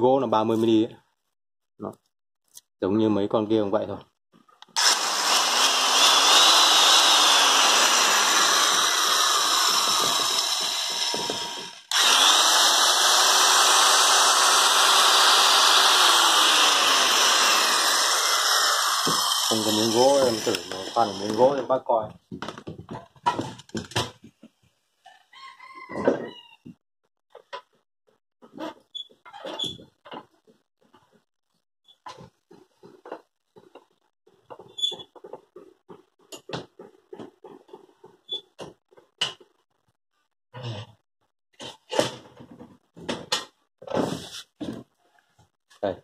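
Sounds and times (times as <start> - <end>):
knocks and clatters: 22.2 - 24.6.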